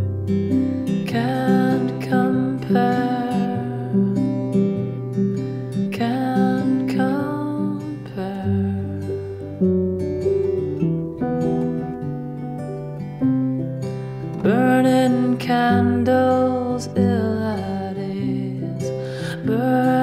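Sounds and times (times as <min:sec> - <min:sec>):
acoustic guitar chords ringing: 0:00.0 - 0:20.0.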